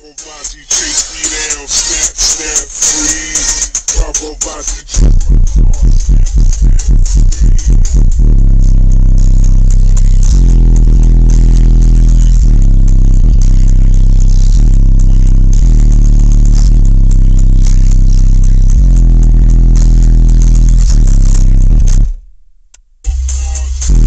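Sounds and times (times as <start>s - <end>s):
loud bass-heavy music: 0.0s - 24.0s.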